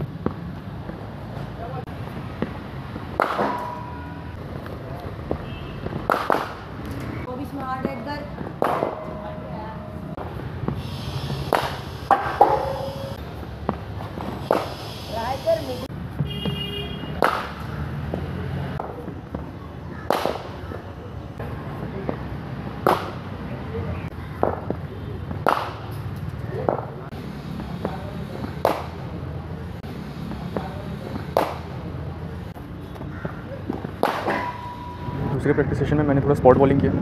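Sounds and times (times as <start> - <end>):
bat striking cricket ball: 2.4 - 6.8, 7.9 - 9.5, 11.5 - 14.8, 16.3 - 17.7, 20.0 - 20.6, 22.8 - 23.2, 24.4 - 25.9, 28.6 - 29.0, 31.2 - 31.7, 33.3 - 35.2.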